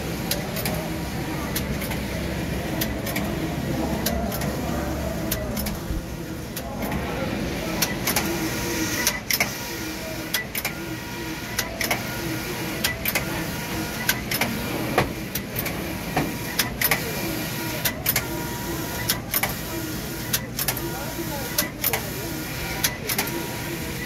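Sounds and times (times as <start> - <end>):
steady machine hum: 0.0 - 24.0.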